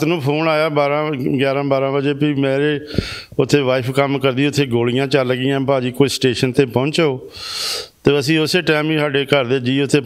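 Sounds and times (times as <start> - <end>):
man speaking: 0.0 - 7.3, 8.0 - 10.0
short breathy hiss: 2.9 - 3.4, 7.3 - 8.0.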